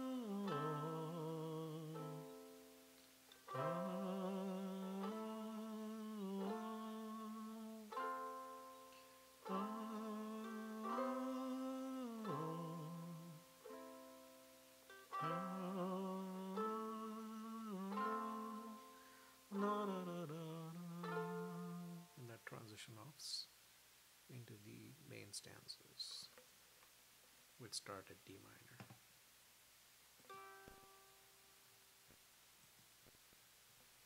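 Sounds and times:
person singing long held notes: 0:00.0 - 0:22.4.

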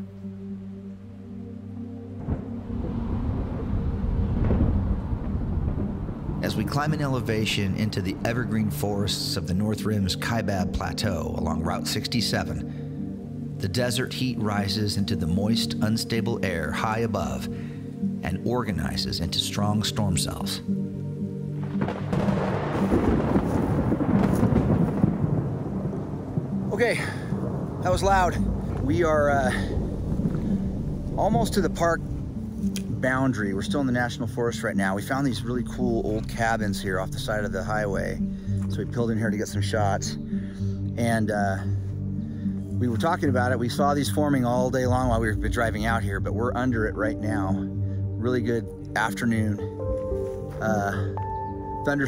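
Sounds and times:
thunder crack and rumble: 0:02.2 - 0:09.3, 0:21.6 - 0:32.4.

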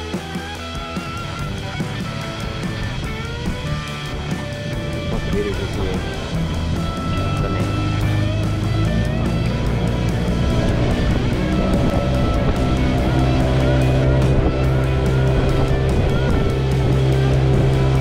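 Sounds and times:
background music with bass: 0:00.0 - 0:18.0.

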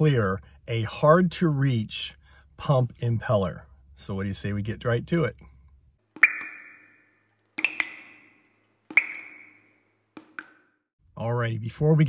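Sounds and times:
water-drop-like plinks: 0:06.2 - 0:10.8.

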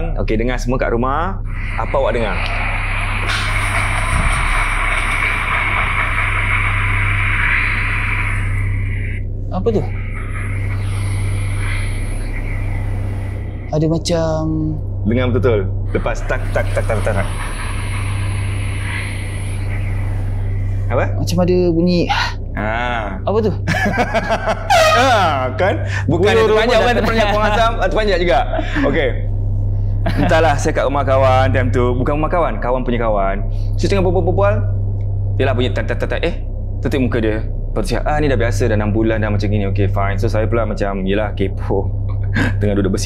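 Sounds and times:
low hum: 0:00.0 - 0:43.0
steady hiss: 0:01.5 - 0:14.1, 0:15.8 - 0:21.4
person speaking: 0:24.7 - 0:29.2.

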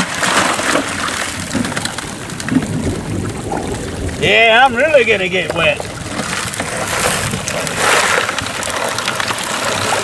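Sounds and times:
bucket of material emptied: 0:00.0 - 0:02.8, 0:03.5 - 0:10.0
stream water splashing: 0:00.0 - 0:10.0.

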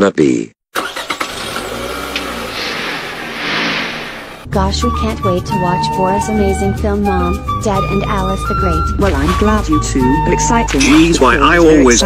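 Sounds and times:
car engine starting and running: 0:00.8 - 0:12.0.

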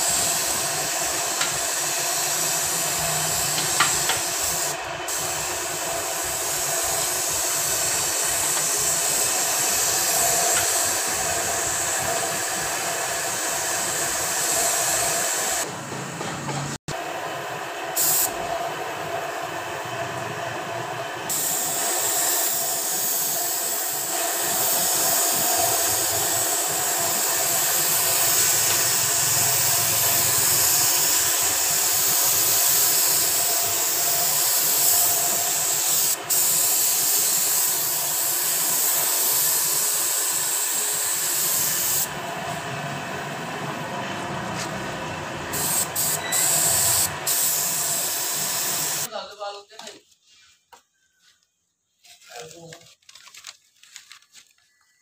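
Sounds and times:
spray gun hissing: 0:00.0 - 0:15.7, 0:17.9 - 0:18.4, 0:21.3 - 0:42.2, 0:45.4 - 0:49.1.

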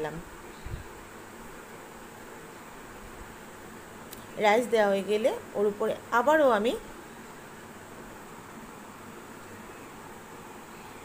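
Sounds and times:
faint background hum and hiss: 0:00.0 - 0:11.0.

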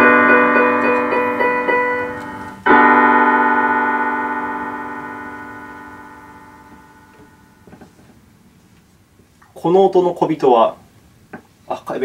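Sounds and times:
electronic keyboard chord: 0:00.0 - 0:07.9.

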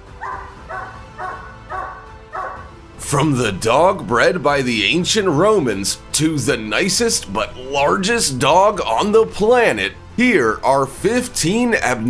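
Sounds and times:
dog barking: 0:00.1 - 0:02.7.

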